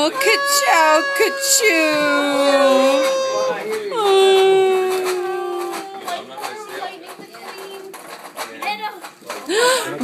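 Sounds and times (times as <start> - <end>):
child whining: 0.0 - 6.2
children chattering: 0.0 - 10.0
clatter at the table: 2.8 - 10.0.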